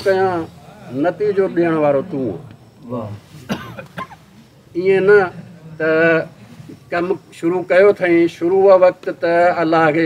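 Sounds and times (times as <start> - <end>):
person coughing: 3.5 - 4.2.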